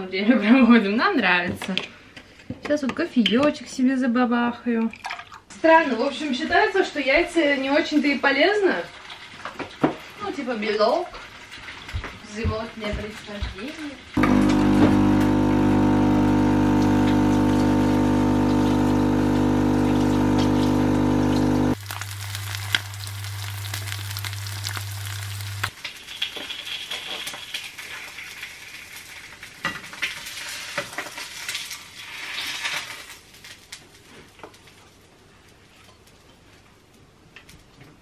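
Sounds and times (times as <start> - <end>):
coffee machine pump humming: 14.2 - 25.7
eggs sizzling in a pan: 14.2 - 33.6.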